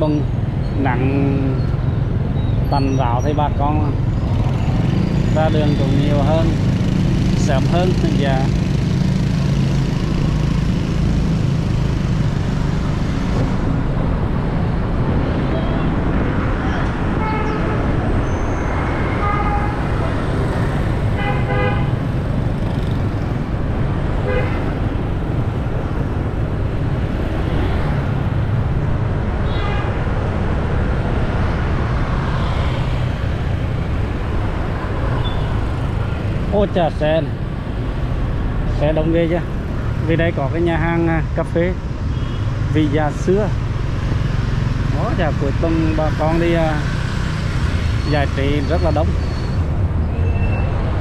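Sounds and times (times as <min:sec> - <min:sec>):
motorbike engine and road rumble: 0:00.0 - 0:51.0
horn toots: 0:18.6 - 0:20.2, 0:21.1 - 0:22.0, 0:24.2 - 0:24.7.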